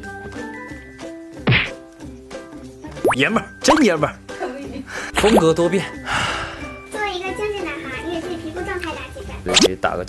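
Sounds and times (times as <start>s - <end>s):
light background music: 0.0s - 10.0s
cartoon thud dropping in pitch: 1.5s - 1.7s.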